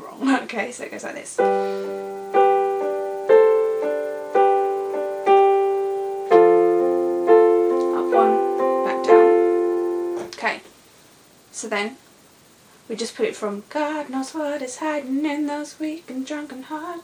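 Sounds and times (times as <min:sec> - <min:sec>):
digital piano playing slow chords: 0:01.4 - 0:10.4.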